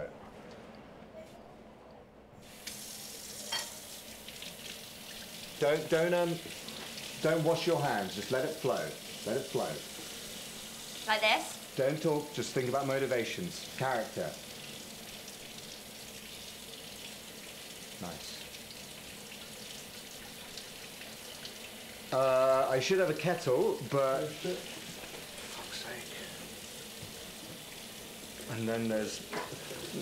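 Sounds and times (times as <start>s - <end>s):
water running into sink: 2.4s - 30.0s.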